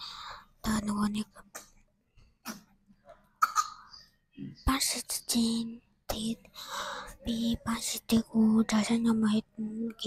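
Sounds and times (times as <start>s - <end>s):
breathy speech close on microphone: 0.0s - 1.8s, 2.4s - 10.0s
girl coughing: 3.4s - 4.0s.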